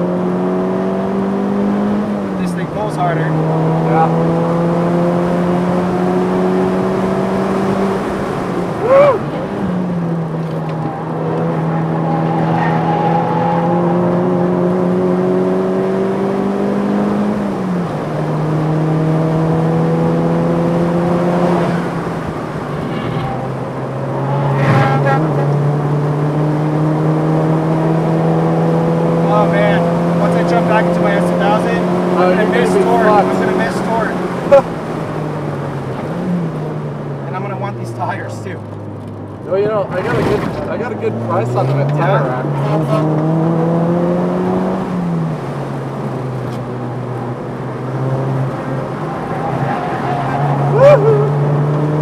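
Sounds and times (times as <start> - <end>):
car engine revving: 0.0 - 52.0.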